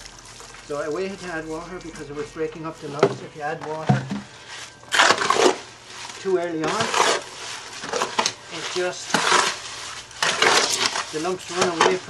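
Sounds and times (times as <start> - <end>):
shovel scraping wet mix: 0.0 - 12.0.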